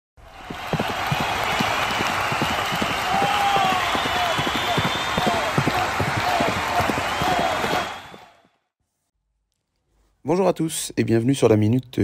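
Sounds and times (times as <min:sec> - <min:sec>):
people shouting: 0:00.2 - 0:08.3
crowd noise: 0:00.2 - 0:08.4
hooves thudding: 0:00.5 - 0:08.4.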